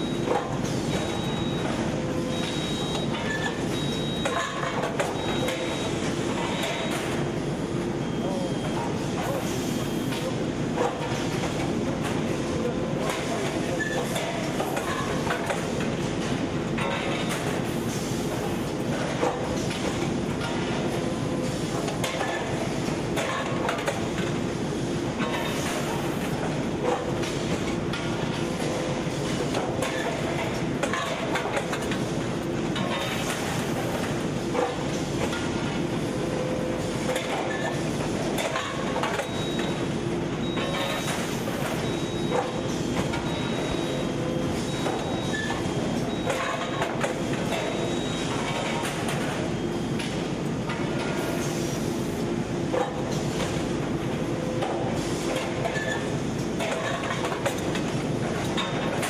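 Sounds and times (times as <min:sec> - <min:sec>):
machine clanks and knocks: 0:13.0 - 0:17.6, 0:21.8 - 0:24.3, 0:26.4 - 0:33.6, 0:54.6 - 0:59.0.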